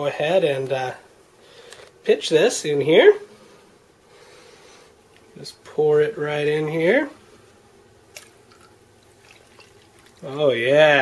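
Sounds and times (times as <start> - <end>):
liquid trickling and dripping: 8.1 - 10.4.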